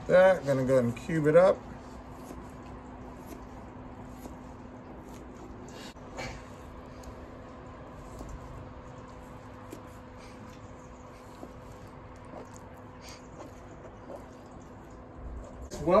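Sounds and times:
steady low hum: 0:00.0 - 0:16.0
knife cutting on plastic board: 0:02.0 - 0:05.4.

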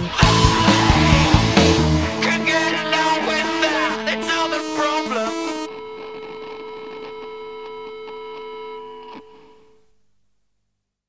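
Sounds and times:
sustained guitar note ringing: 0:00.2 - 0:09.8.

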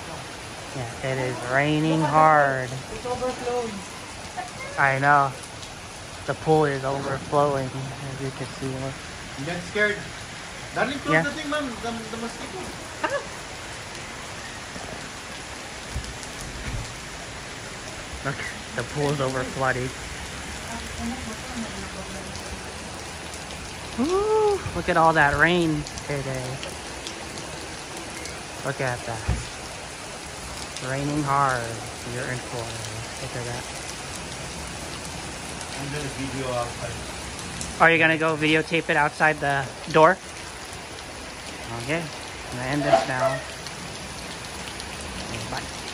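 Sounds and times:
heavy rain on water and paving: 0:00.0 - 0:45.9.

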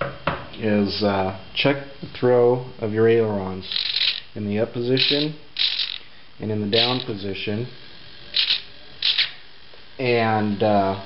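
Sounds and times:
small servo whirring: 0:03.7 - 0:04.3, 0:05.0 - 0:06.1, 0:06.7 - 0:07.1, 0:08.3 - 0:09.4.

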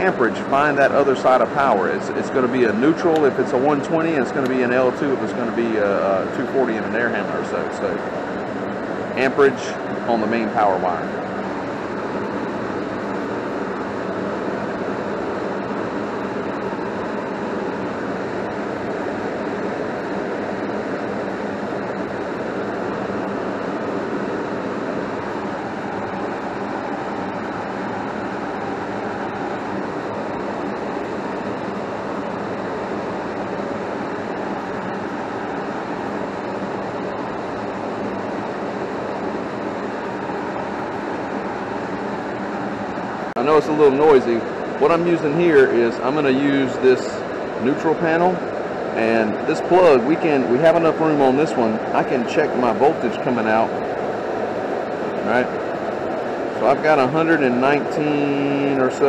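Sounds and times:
furnace blower whirring: 0:00.0 - 0:59.0.

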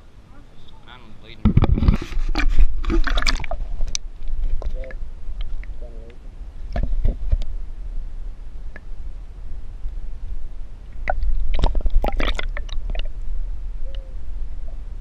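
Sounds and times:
water splashing: 0:00.0 - 0:05.9, 0:09.8 - 0:13.6
muffled underwater rumble: 0:00.0 - 0:15.0
underwater clicks: 0:01.5 - 0:07.5, 0:10.9 - 0:13.3.

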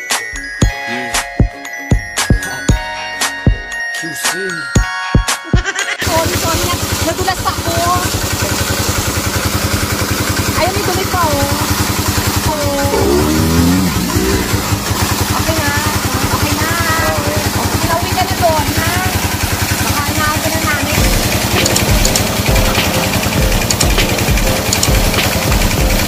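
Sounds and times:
small engine running: 0:06.0 - 0:26.0
water gushing onto ground: 0:06.0 - 0:26.0.

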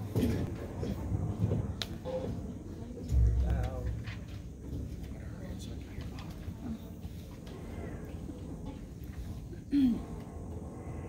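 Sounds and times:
indistinct voices: 0:03.0 - 0:11.0
low thud: 0:03.1 - 0:05.2.

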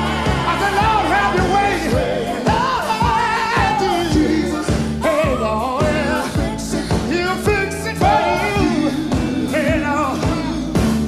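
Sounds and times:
drum beat and bass: 0:00.0 - 0:11.0
person singing gospel: 0:00.0 - 0:11.0.

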